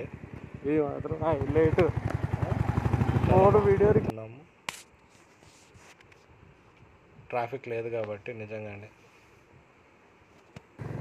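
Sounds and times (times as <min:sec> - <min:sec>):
motorcycle engine cruising: 0:00.0 - 0:04.1, 0:10.8 - 0:11.0.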